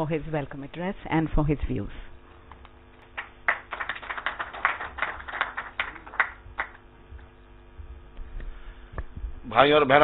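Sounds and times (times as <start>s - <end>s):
audience applause: 3.1s - 6.8s.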